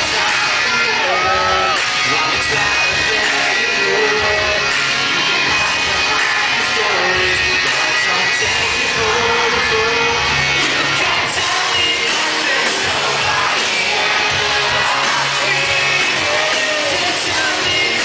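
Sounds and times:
person singing: 0:00.0 - 0:18.0
pop-punk band playing live: 0:00.0 - 0:18.0.

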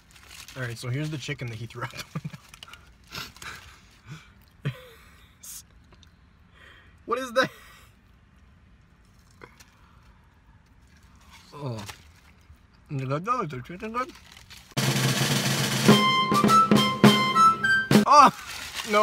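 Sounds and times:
faint clicks and rustles: 0:00.0 - 0:04.6.

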